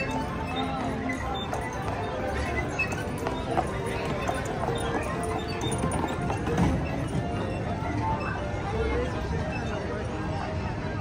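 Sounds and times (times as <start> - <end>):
background music: 0.0 - 11.0
hooves clip-clopping on brick: 0.6 - 7.4.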